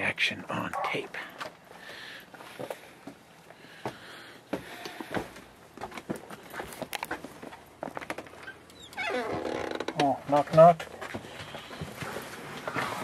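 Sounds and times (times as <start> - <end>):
soft footsteps on wooden deck: 0.8 - 13.0
small clicks and knocks: 5.9 - 9.0.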